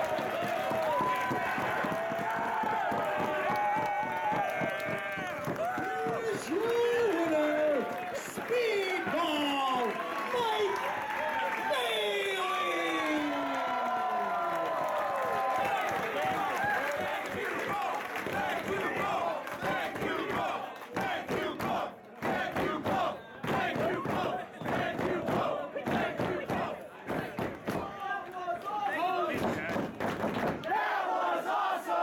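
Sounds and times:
crowd shouting and cheering: 0:00.0 - 0:32.0.

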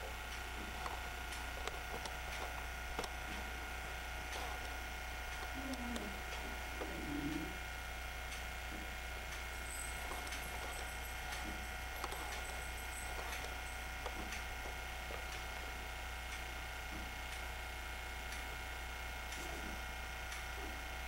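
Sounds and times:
faint mechanical whir: 0:00.0 - 0:21.0
low hum: 0:00.0 - 0:21.0
thin steady tones: 0:00.0 - 0:21.0.

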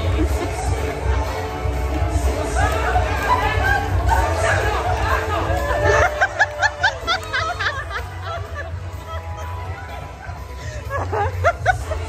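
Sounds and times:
voices chattering in a hall: 0:00.0 - 0:12.0.

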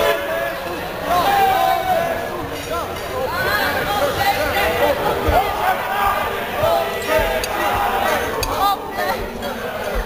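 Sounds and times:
voices chattering in a hall: 0:00.0 - 0:10.0.

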